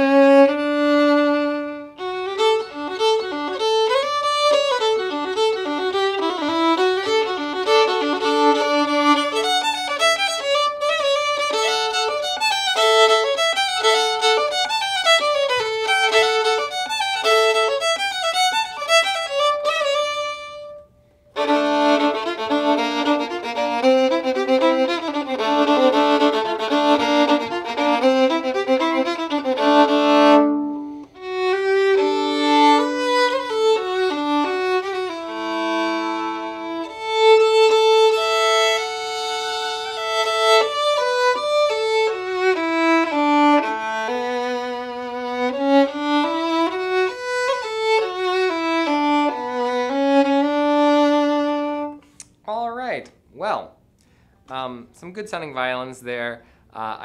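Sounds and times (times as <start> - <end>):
solo violin melody: 0.0 - 52.4.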